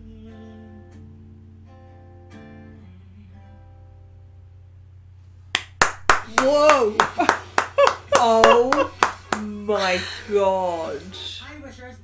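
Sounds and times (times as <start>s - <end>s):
hands clapping: 5.5s - 9.6s.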